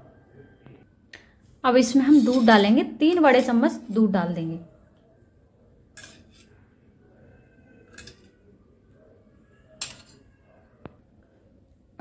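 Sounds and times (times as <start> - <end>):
steel spoon clinking on bowl: 9.8 - 10.2.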